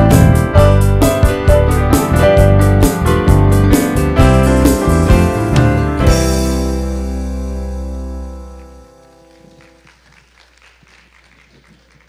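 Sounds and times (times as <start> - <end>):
faint scattered applause: 8.5 - 12.0.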